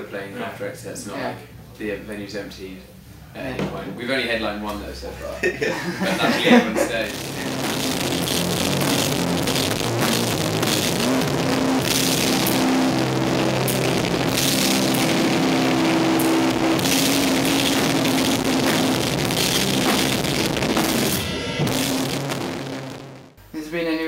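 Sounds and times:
rock band playing live: 0:06.5 - 0:23.2.

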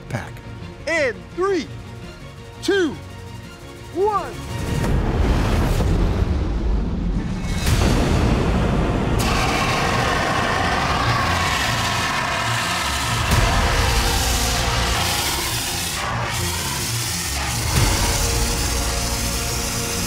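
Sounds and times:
fire extinguisher hissing: 0:09.2 - 0:20.0.

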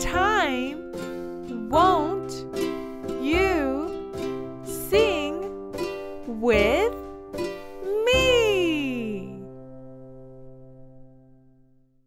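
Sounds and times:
held music chord: 0:00.0 - 0:09.6.

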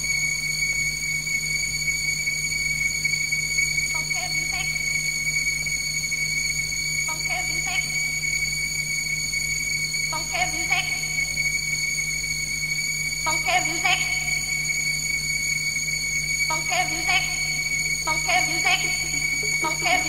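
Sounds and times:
high-pitched whine: 0:03.4 - 0:20.0
low hum: 0:16.5 - 0:20.0.

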